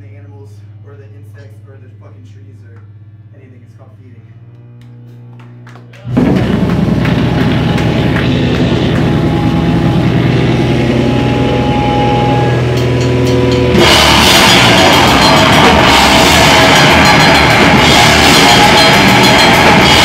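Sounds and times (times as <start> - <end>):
distorted guitar chord ringing: 6.1 - 20.0
heavy rock band playing: 6.1 - 20.0.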